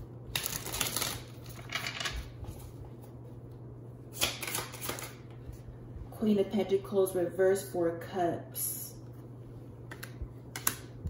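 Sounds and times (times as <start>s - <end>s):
low hum: 5.1s - 11.0s.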